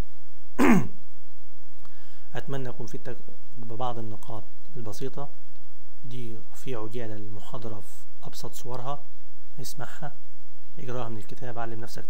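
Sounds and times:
man clearing his throat: 0.6 - 1.0.

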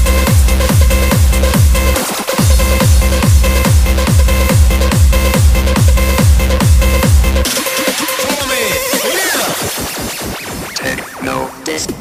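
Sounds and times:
techno synth tones sweeping: 2.4 - 11.9.

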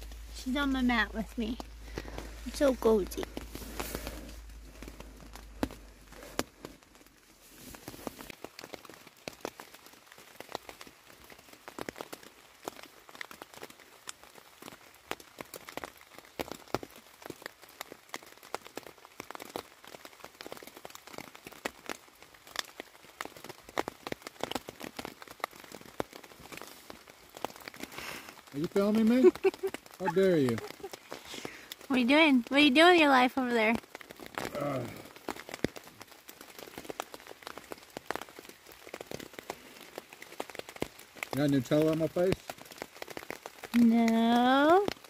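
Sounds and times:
rain on tent fabric: 0.0 - 45.0.

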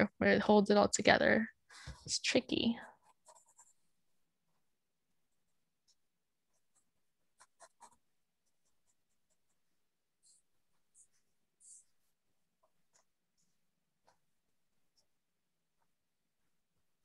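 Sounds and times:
pencil scratching on paper: 2.8 - 16.8.

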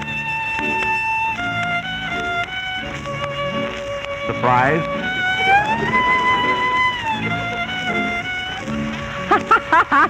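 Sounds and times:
soft accompaniment: 0.0 - 10.0
solo violin slow melody: 0.0 - 10.0.

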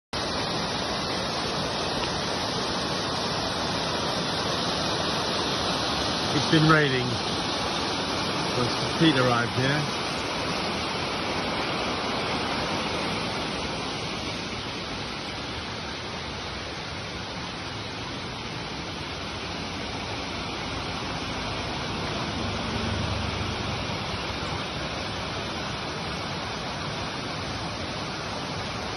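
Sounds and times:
water rushing in stream: 0.1 - 28.9.

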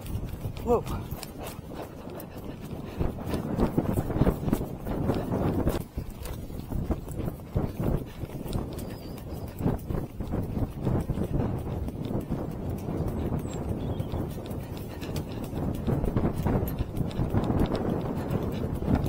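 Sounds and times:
horse hoofbeats on grass: 0.0 - 19.0
wind on microphone: 0.0 - 19.0.

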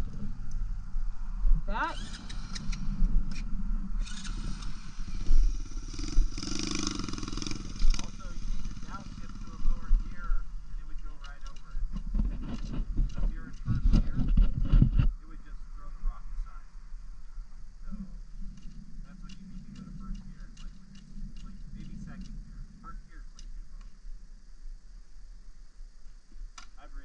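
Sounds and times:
dirt bike engine revving: 1.7 - 11.6.

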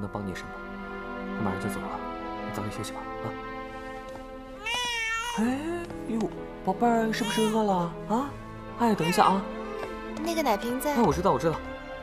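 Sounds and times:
newborn baby crying: 4.6 - 5.7, 7.1 - 7.9, 8.8 - 9.9.

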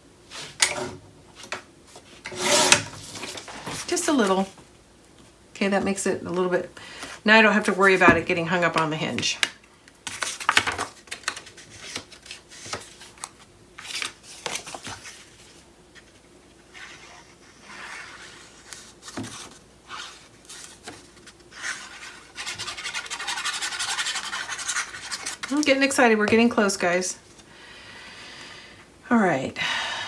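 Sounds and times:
paper rubbing: 21.5 - 25.6.

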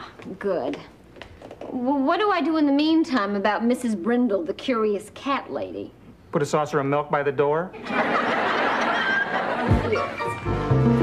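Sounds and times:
studio audience laughing: 7.8 - 10.4.

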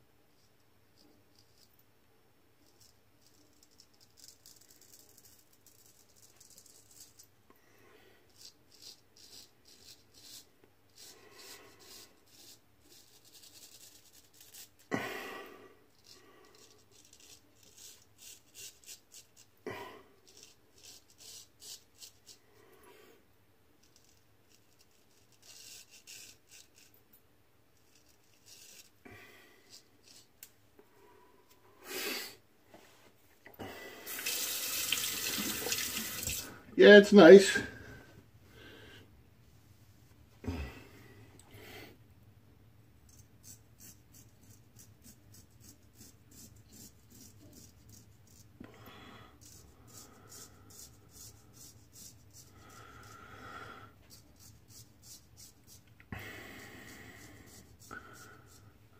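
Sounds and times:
razor scraping stubble: 8.3 - 14.9, 16.0 - 19.5, 20.3 - 22.4, 23.8 - 27.0, 43.1 - 48.6
faucet running into sink: 34.1 - 36.5.

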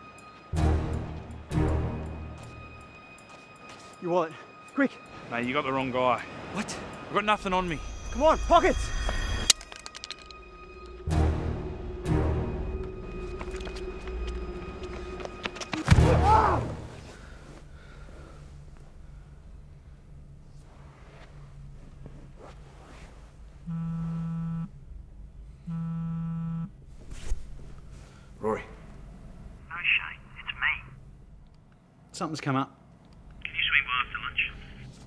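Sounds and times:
mobile phone buzzing: 23.7 - 24.7, 25.7 - 26.7.

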